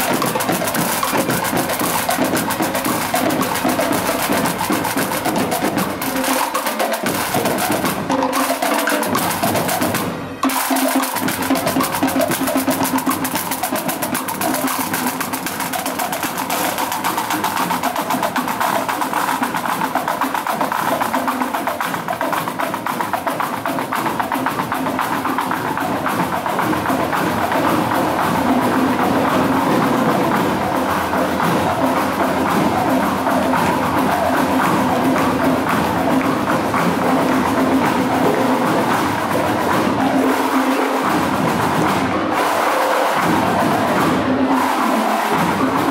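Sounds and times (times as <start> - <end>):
marching drum beats: 0.0 - 45.9.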